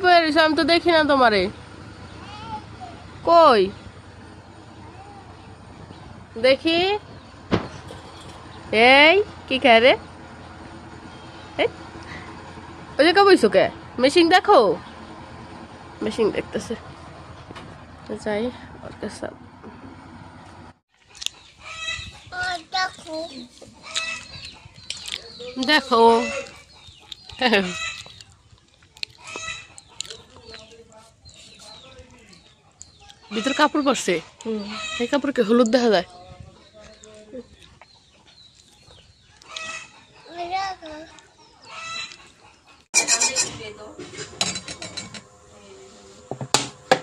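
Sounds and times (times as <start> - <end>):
hens clucking: 21.0 - 45.4.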